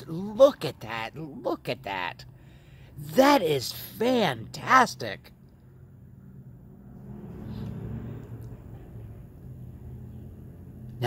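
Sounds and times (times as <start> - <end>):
distant road traffic: 0.0 - 11.0
car passing: 5.2 - 11.0.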